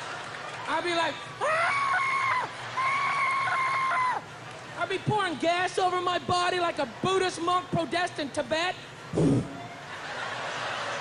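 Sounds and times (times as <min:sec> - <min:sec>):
brief vocal sound: 0:09.1 - 0:09.6
audience laughing: 0:09.4 - 0:11.0.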